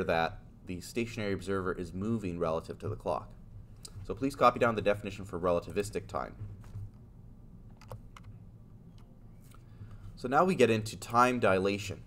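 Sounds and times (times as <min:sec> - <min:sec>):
computer keyboard clicks: 0:07.7 - 0:08.3.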